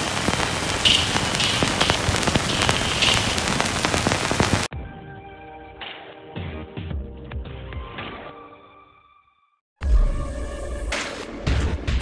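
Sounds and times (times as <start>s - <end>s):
old film crackle: 0.0s - 4.7s.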